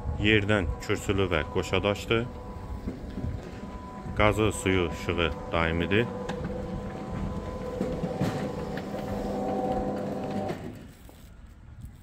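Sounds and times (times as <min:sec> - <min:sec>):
roller shutter motor humming: 0:00.0 - 0:11.5.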